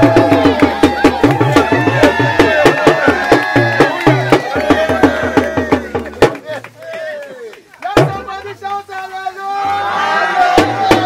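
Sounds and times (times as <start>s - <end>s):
drum music: 0.0s - 6.7s, 7.8s - 8.6s, 10.3s - 11.0s.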